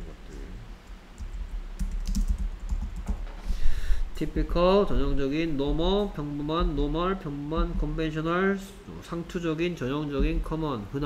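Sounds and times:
computer keyboard typing: 1.2s - 3.3s.

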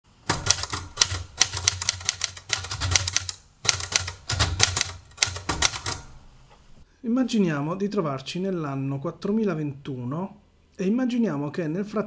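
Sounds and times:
manual typewriter typing: 0.2s - 6.2s.

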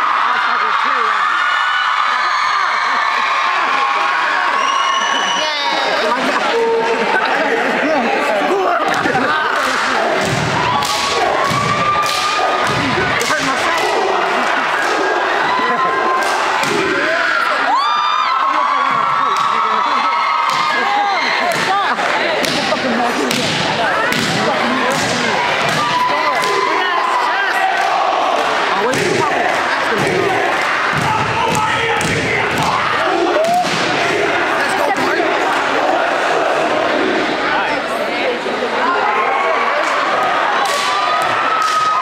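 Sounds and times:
crowd cheering and shouting: 0.0s - 42.0s.

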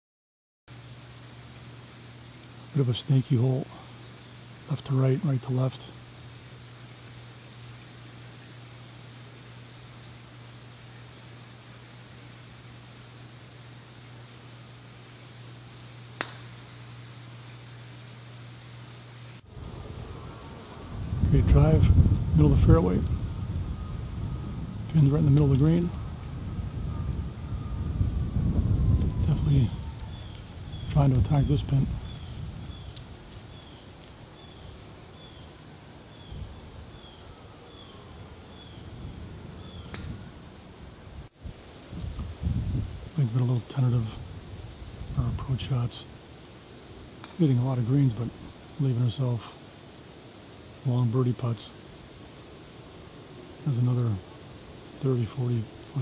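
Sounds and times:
outdoor background noise: 0.7s - 56.0s
steady hiss: 0.7s - 56.0s
golf club striking ball: 16.2s - 16.7s, 39.9s - 40.2s, 47.2s - 47.6s
bird falling chirp: 29.7s - 31.0s.

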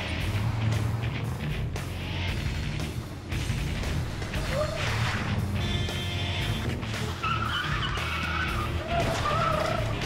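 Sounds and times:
tyres squealing: 7.0s - 10.0s.

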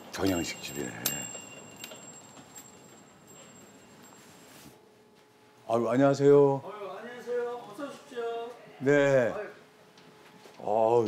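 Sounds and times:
door chime ringing: 0.0s - 4.6s.

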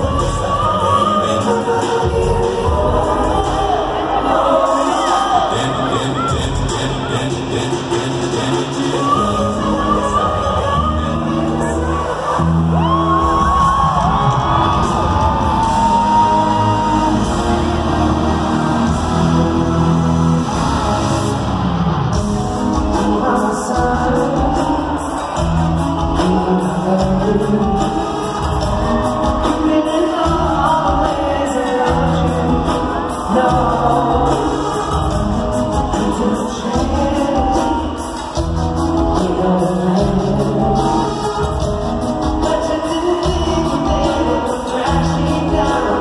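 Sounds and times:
voices singing: 0.0s - 21.0s
live band music: 0.0s - 46.0s.

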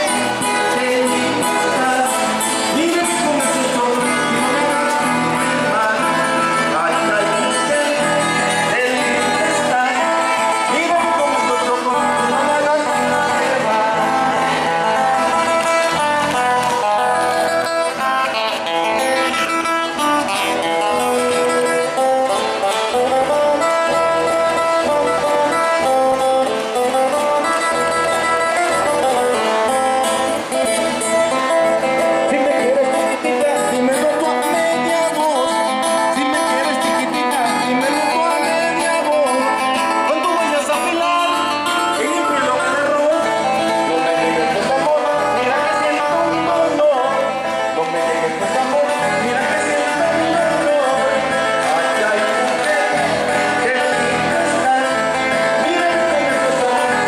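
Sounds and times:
acoustic guitars playing dance tune: 0.0s - 57.0s.

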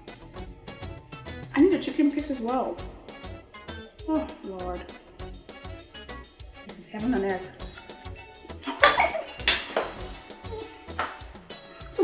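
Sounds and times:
background music: 0.0s - 12.0s
utensils clinking against a pot: 7.4s - 12.0s.

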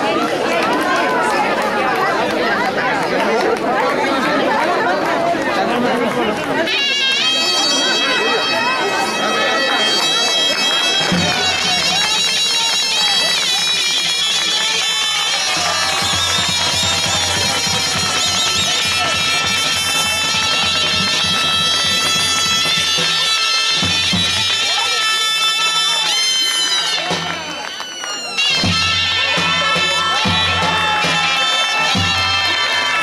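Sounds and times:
crowd chatter: 0.0s - 33.0s
reed wind instrument melody: 6.5s - 33.0s.

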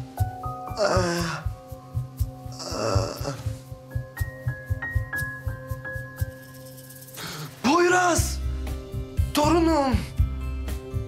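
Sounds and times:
background music with low pulse: 0.0s - 11.0s
man's snoring groan: 2.6s - 3.4s.

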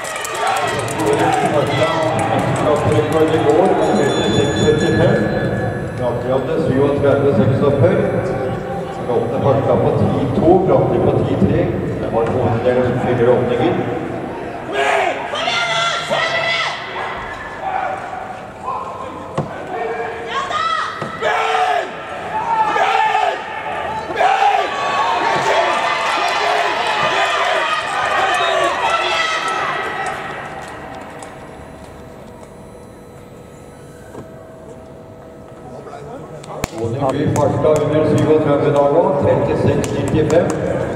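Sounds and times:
raised voices in a large hall: 0.0s - 40.9s.

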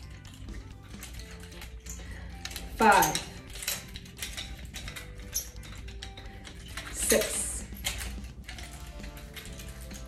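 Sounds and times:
nunchuck chain clicking and rattling: 0.0s - 10.0s.

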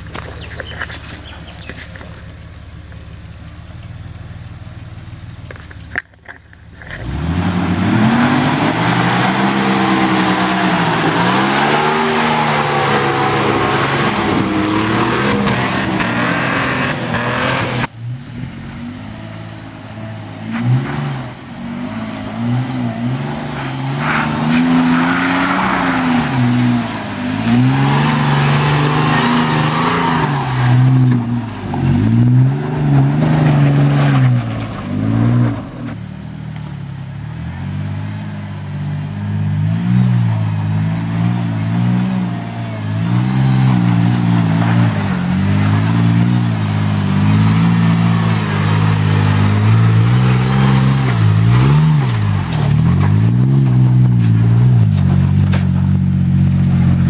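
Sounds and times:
off-road engines revving: 0.0s - 57.0s
tyres spinning throwing dirt: 42.9s - 57.0s.

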